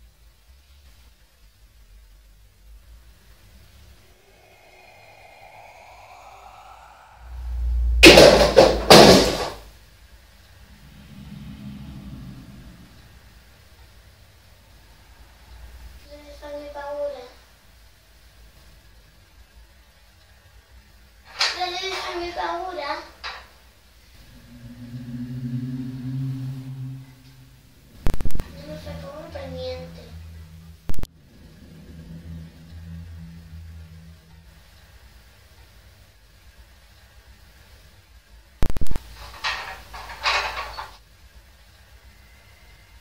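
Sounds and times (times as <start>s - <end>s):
low droning hum: 1.6s - 21.0s, 23.8s - 40.2s
low rumble: 2.4s - 17.0s, 23.9s - 36.2s
faint rising tone: 2.7s - 9.0s, 10.1s - 16.4s, 24.0s - 35.9s
loud bangs: 7.9s - 9.7s.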